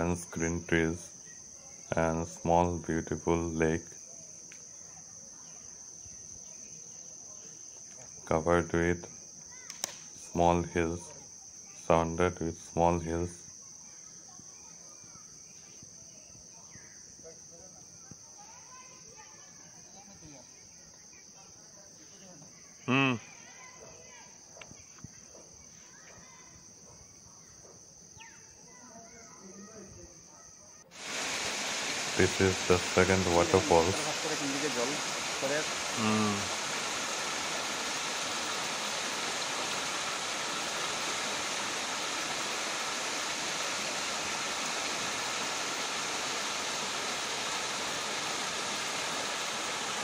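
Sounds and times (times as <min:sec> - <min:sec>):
high-pitched insect drone: 0:00.0 - 0:23.2, 0:27.9 - 0:50.0
faint background hiss: 0:00.0 - 0:26.4, 0:30.8 - 0:50.0
small waterfall rushing: 0:30.9 - 0:50.0.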